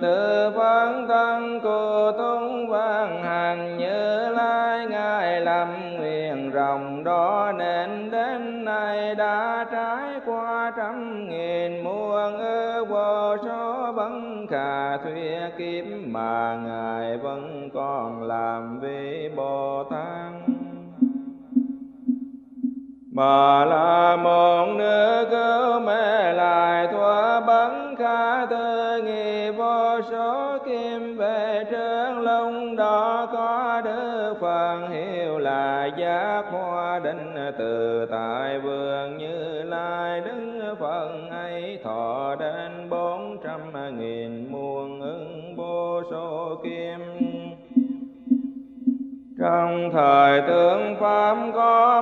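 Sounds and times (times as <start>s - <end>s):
person chanting: 0.0s - 21.6s, 23.1s - 48.6s, 49.4s - 52.0s.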